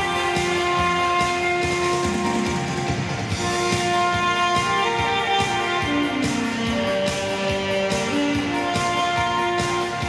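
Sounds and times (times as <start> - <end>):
band accompaniment with steady beat: 0.0 - 10.0
saxophone long note: 0.0 - 10.0.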